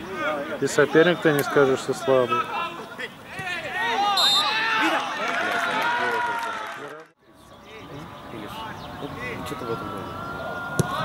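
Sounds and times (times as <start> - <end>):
referee's whistle blast: 4.1 - 4.8.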